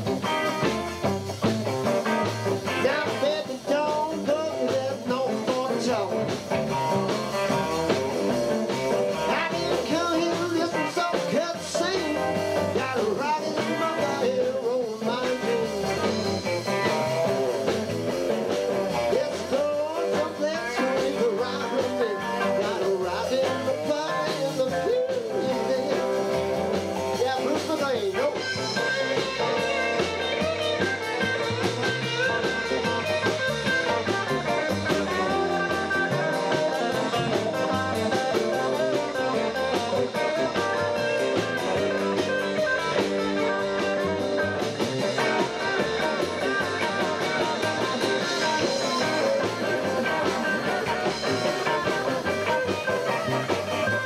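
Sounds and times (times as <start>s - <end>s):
blues-rock band playing: 0.0s - 54.0s
lead guitar bending notes: 0.0s - 54.0s.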